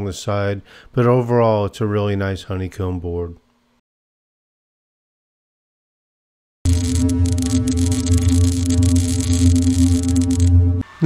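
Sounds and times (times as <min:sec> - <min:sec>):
crackling hiss: 0:06.7 - 0:10.6
low electronic drone: 0:06.7 - 0:11.0.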